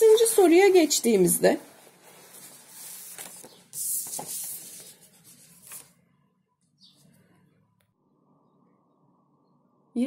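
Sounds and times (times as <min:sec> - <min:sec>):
paper rustling: 0:00.0 - 0:06.0.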